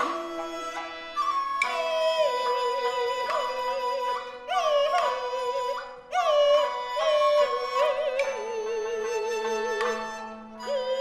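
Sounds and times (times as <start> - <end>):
traditional instrumental accompaniment: 0.0 - 11.0
woman singing opera with vibrato: 1.6 - 8.9.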